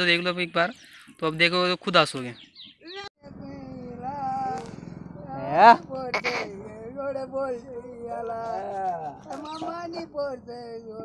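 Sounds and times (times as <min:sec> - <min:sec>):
old man singing unaccompanied: 0:02.9 - 0:11.0.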